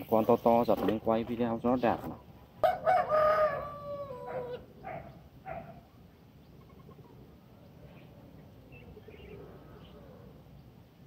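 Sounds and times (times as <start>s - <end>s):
rooster crowing: 2.6s - 4.7s.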